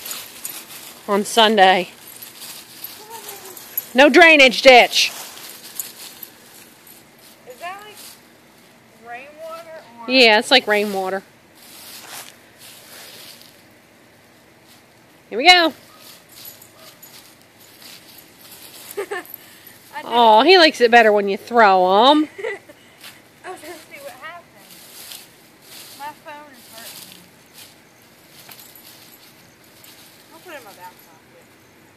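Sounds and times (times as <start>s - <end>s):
dry leaves rustling: 0.0s - 31.9s.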